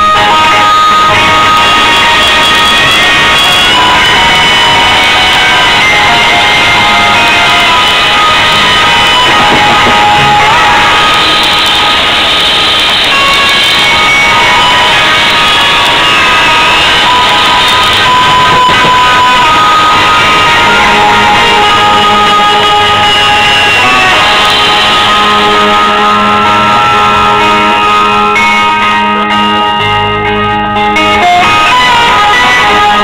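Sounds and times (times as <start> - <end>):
live band playing: 0.0 - 33.0.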